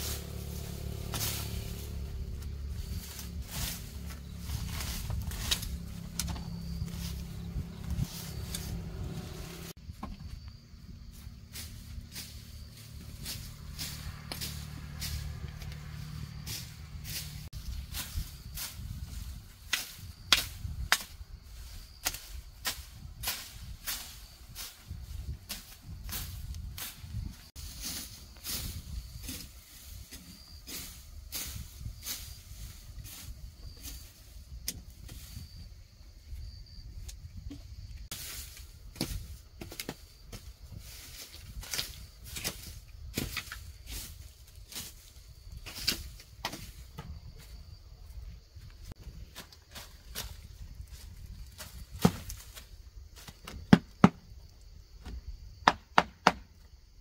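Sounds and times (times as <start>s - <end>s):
machete chopping grass and soil: 0.0s - 9.8s, 11.5s - 35.5s, 38.1s - 47.1s, 51.6s - 52.6s, 53.2s - 54.3s, 55.6s - 56.5s.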